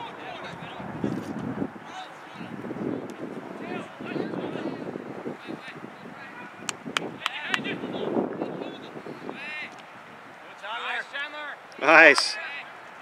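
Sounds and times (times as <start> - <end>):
people shouting outdoors: 3.5 - 8.1, 10.4 - 12.8.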